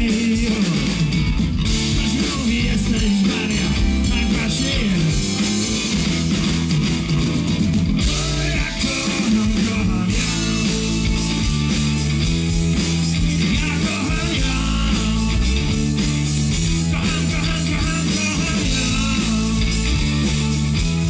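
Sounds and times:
blues-rock band playing: 0.0 - 21.0.

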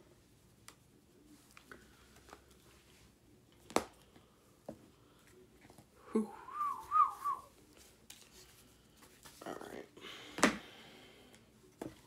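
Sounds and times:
person whistling: 6.2 - 7.5.

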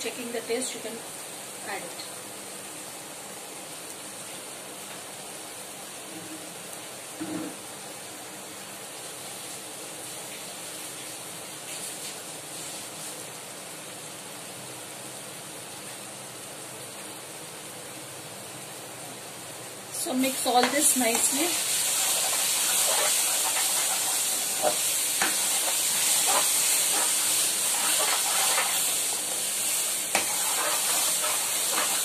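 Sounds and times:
stove hissing: 0.0 - 14.5, 15.1 - 32.0.

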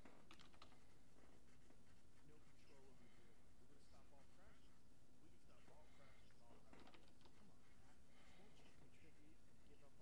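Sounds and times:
faint keyboard clicks: 0.2 - 0.8.

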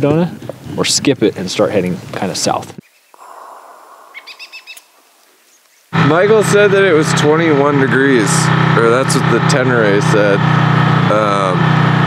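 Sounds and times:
faint steady hiss: 0.0 - 6.0
bird chirping: 2.8 - 6.0.

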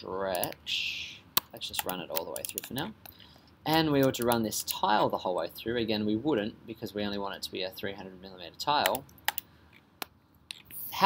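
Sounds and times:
computer mouse clicks: 1.4 - 4.4, 8.8 - 10.7.

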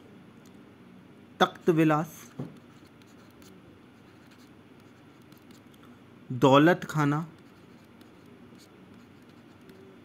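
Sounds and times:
handwriting strokes on touchscreen: 2.3 - 5.7, 7.2 - 10.0.

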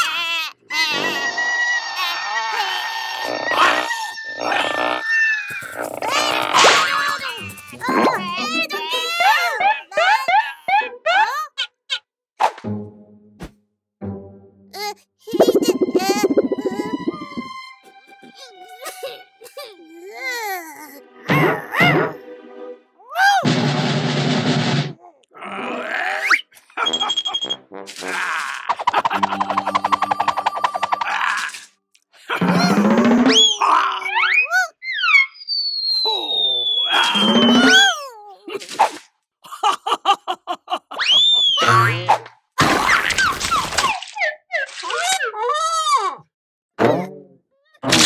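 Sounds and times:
cartoon voices grunting and growling: 5.6 - 7.1, 25.0 - 26.4
background music: 12.4 - 24.0
cartoon splash with falling chirps: 15.3 - 17.5, 34.9 - 37.8
comic sound effects: 15.3 - 17.5, 28.8 - 31.2, 36.9 - 38.0
cartoon boing: 15.4 - 17.5
cartoon character vocal sounds: 15.4 - 17.5
fast even ticking: 15.4 - 17.5.

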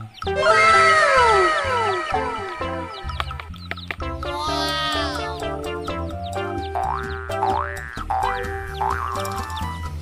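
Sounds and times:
upbeat children's music: 0.0 - 10.0
cartoon boing effects: 6.8 - 9.3.

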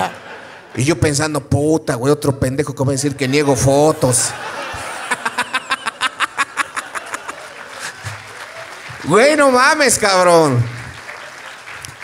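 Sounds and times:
man laughing heartily: 4.0 - 8.2
audience applauding: 4.5 - 12.0.

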